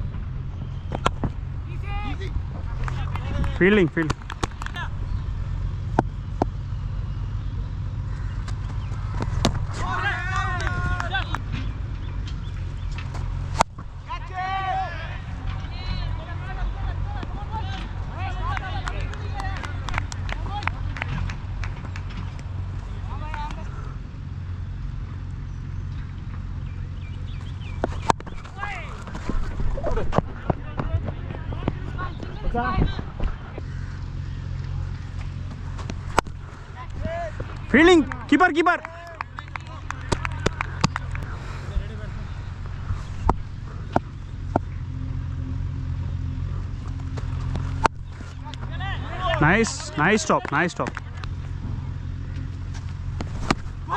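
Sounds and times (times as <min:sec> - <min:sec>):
steady low rumble: 0:00.0 - 0:53.9
cricket bat hitting ball: 0:08.4 - 0:11.1
people shouting: 0:09.7 - 0:11.4, 0:14.1 - 0:19.6
distant shout: 0:09.7 - 0:11.6, 0:14.0 - 0:21.4, 0:28.4 - 0:29.1, 0:36.4 - 0:42.0, 0:48.4 - 0:51.3
wind rumble on microphone: 0:27.3 - 0:34.0.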